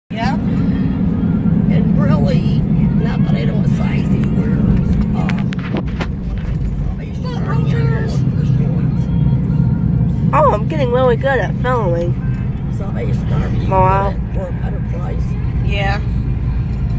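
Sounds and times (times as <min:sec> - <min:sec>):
car road and engine rumble: 0:00.1 - 0:16.9.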